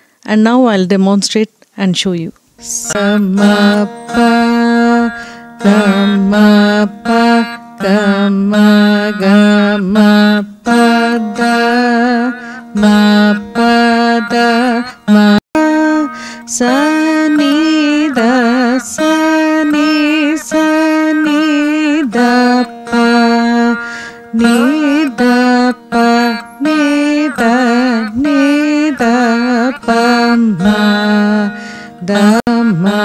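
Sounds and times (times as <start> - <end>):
veena plucked notes: 0.2 - 33.0.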